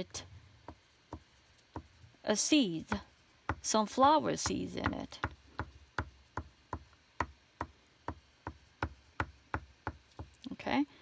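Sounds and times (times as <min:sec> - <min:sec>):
drawing stick tapping on paper: 0:00.6 - 0:02.0, 0:02.8 - 0:10.4.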